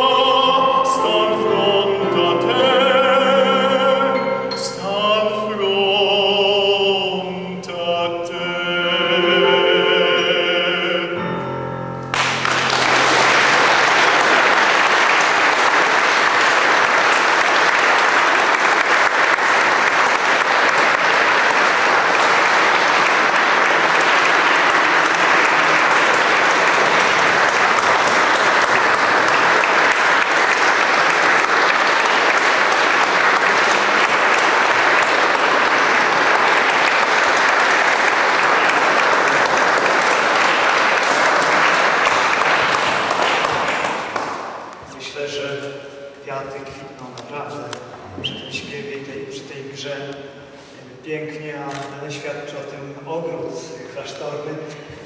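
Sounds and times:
classical singing: 0.0 - 50.1
audience applause: 12.1 - 44.8.

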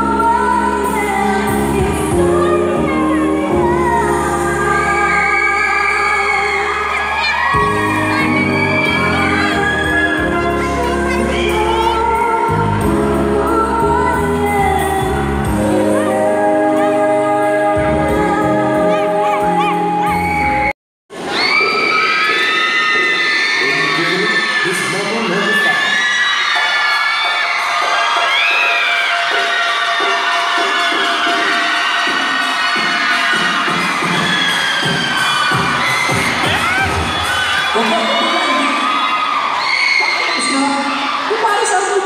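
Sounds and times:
crowd cheering and screaming: 0.0 - 13.8, 14.5 - 42.0
music: 0.0 - 20.8, 24.6 - 42.0.

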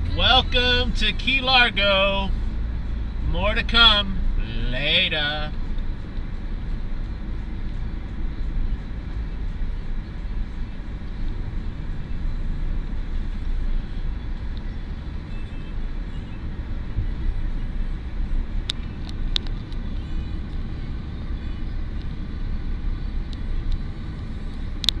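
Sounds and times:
road and engine rumble in car: 0.0 - 25.0.

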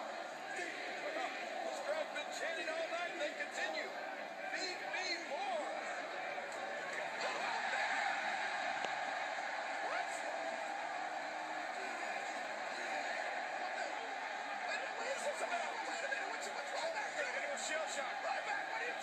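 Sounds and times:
arena crowd din: 0.0 - 19.0.

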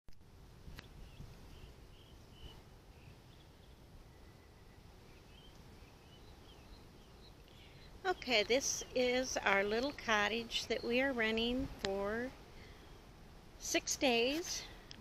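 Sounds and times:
bird chirps: 0.8 - 11.1.

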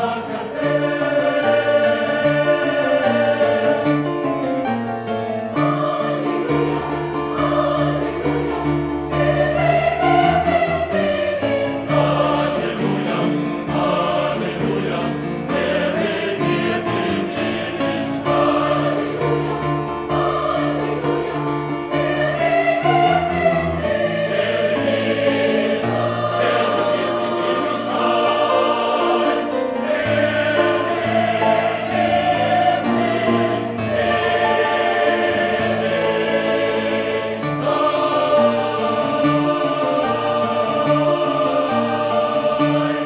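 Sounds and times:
mixed choir singing: 0.0 - 43.0.

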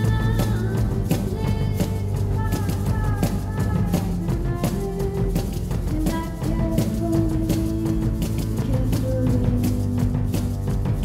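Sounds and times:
drum kit beat: 0.0 - 11.0.

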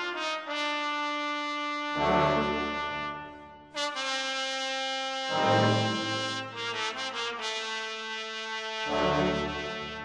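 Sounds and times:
brass instruments holding long notes: 0.0 - 10.0.

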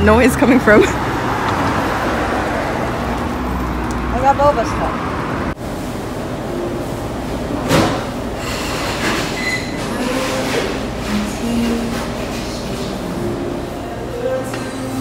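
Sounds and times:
short squeaky tones: 8.4 - 10.2.

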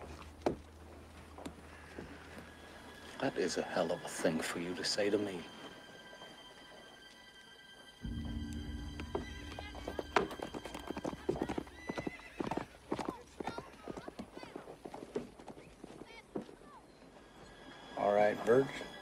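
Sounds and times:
horse hooves clip-clopping: 0.0 - 18.9
low film-score drone: 0.1 - 13.0.

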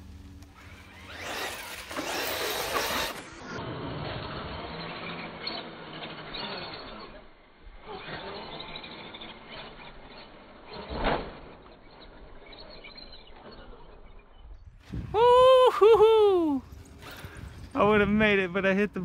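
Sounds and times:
electric motor whine: 0.0 - 14.0
steady outdoor noise: 0.0 - 19.0.

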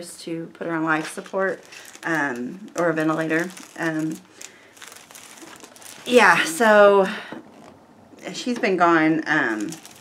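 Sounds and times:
plastic wrapping crinkling: 0.0 - 8.3, 9.3 - 10.0.

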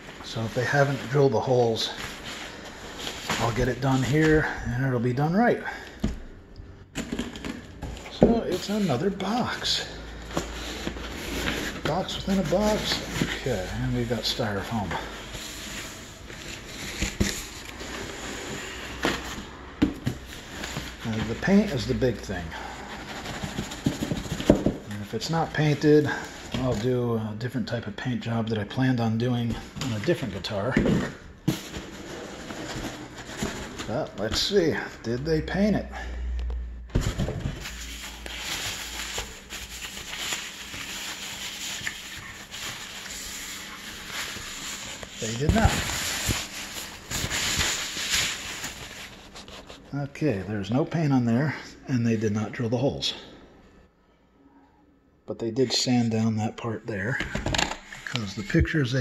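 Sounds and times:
packing wrap rustling and crinkling: 8.2 - 19.5, 37.1 - 49.9.

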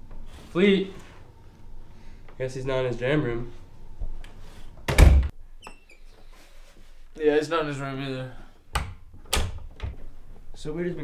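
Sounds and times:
door shutting with thump: 4.9 - 5.3.

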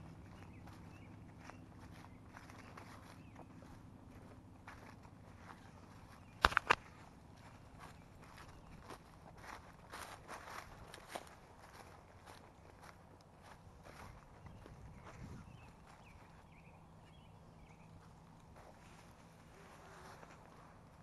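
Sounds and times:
footsteps crackling through brush: 0.0 - 21.0
sharp cracks: 6.4 - 7.0.

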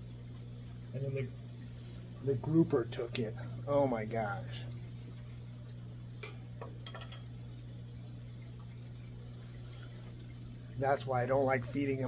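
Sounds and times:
aquarium equipment humming: 0.0 - 12.0
water movement: 0.0 - 12.0.

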